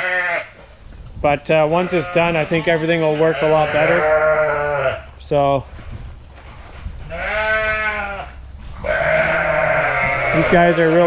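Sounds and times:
sheep bleating: 0.0s - 0.5s, 1.7s - 5.1s, 7.1s - 11.0s.

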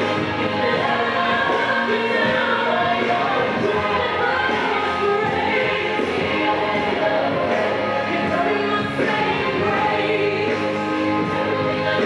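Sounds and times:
song with sung vocals and band: 0.0s - 12.0s.

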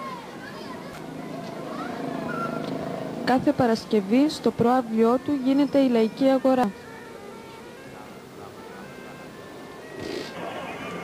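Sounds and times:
children chattering and calling: 0.0s - 3.2s, 4.2s - 11.0s.

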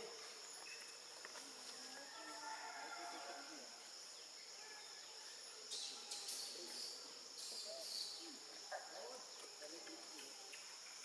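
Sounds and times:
insect chorus: 0.0s - 11.0s.

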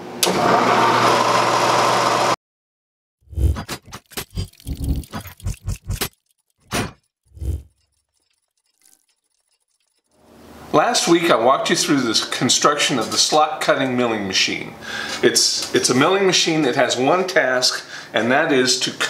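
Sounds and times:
milling machine motor: 7.3s - 10.7s.

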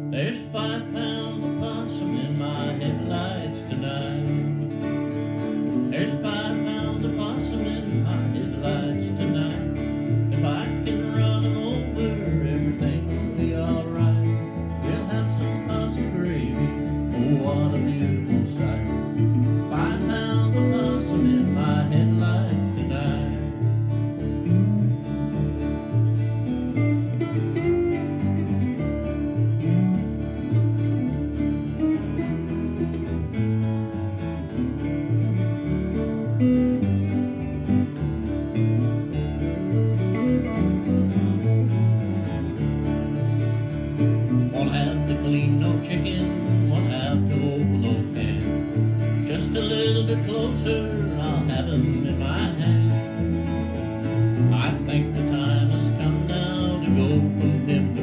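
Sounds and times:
acoustic guitar: 0.0s - 58.0s
electric guitar: 0.0s - 58.0s.

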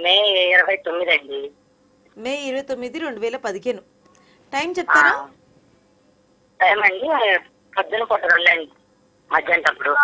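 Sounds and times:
person speaking over telephone: 4.6s - 5.3s, 6.6s - 8.7s, 9.3s - 10.0s.

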